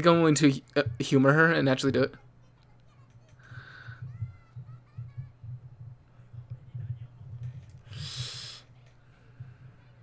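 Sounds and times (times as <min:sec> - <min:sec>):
faint high voice: 0:02.2 - 0:05.7.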